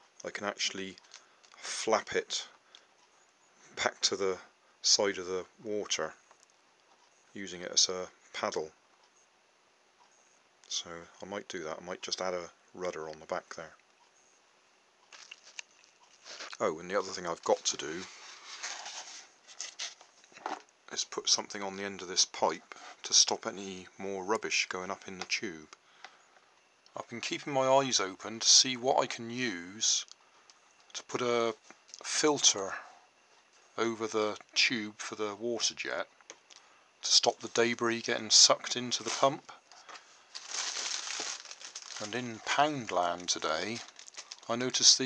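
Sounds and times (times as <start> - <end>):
plastic wrapping crinkling: 15.1 - 20.6, 38.8 - 45.0.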